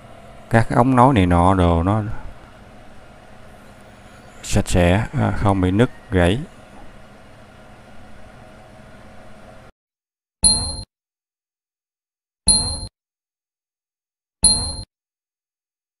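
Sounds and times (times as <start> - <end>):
faint room hum: 0.0 - 9.7
electronic ding: 10.4 - 10.9, 12.5 - 12.9, 14.4 - 14.9.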